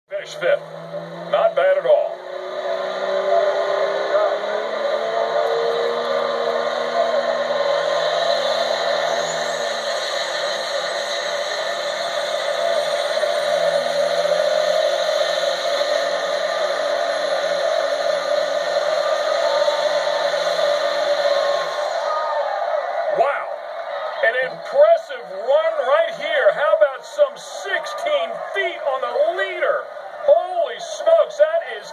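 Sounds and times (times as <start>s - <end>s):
diesel truck engine at full throttle: 0.1s - 31.9s.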